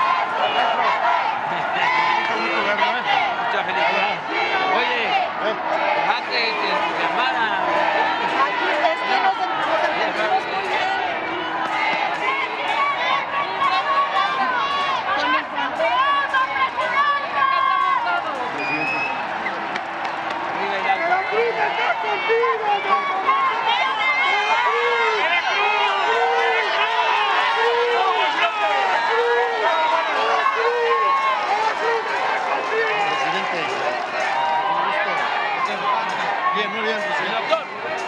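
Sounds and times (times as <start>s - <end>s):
crowd calling out: 0.0s - 38.0s
crowd chanting in unison: 0.0s - 38.0s.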